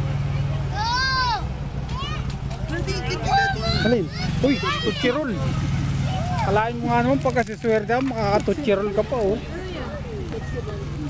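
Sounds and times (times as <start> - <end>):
vehicle engine humming: 0.0 - 11.0
voices talking: 0.0 - 11.0.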